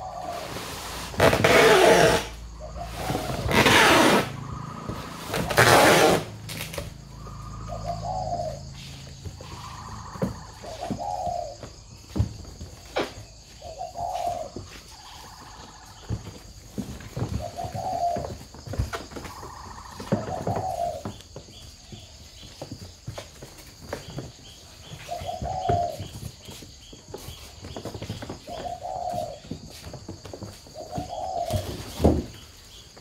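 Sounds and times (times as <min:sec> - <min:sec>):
doves cooing: 0:00.0 - 0:23.2, 0:23.8 - 0:33.0.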